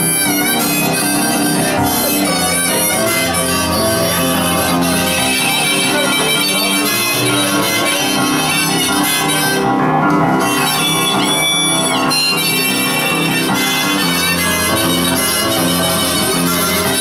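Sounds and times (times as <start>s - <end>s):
blues harmonica: 0.0s - 17.0s
upright piano accompaniment: 0.0s - 17.0s.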